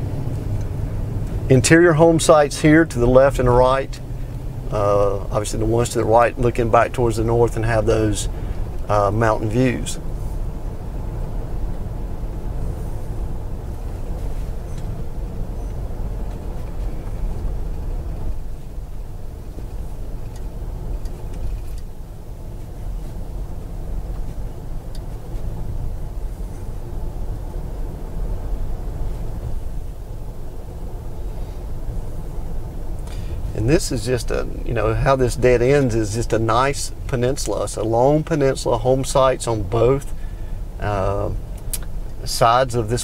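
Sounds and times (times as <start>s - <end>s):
car engine and tyre noise: 0.0s - 43.0s.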